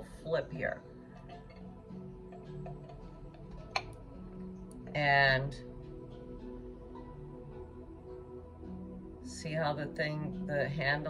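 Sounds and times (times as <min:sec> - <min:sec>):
soft background music: 0:00.0 - 0:11.0
teacup set on saucer: 0:01.2 - 0:04.0.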